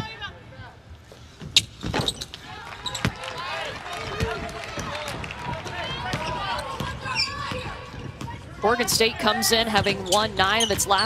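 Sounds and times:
shoe squeaks: 1.4 - 3.0, 6.2 - 7.5, 10.0 - 11.0.

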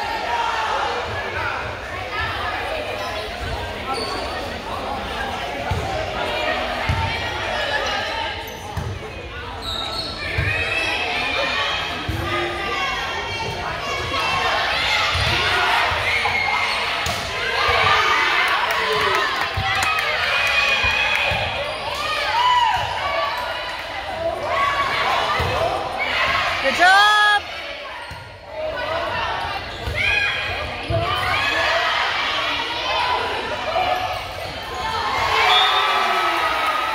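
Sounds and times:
spectators' voices echoing: 0.0 - 36.9
loud shout: 24.4 - 27.5, 34.8 - 36.9.

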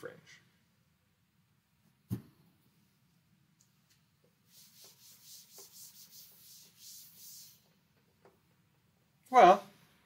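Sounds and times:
chalkboard being wiped: 4.4 - 7.8.

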